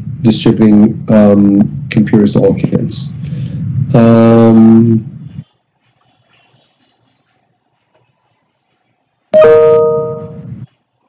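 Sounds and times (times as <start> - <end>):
two-note chime: 9.4 - 10.5.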